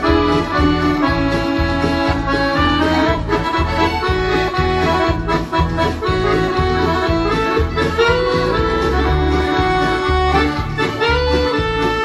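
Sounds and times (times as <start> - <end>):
button accordion playing: 0.0 - 12.0.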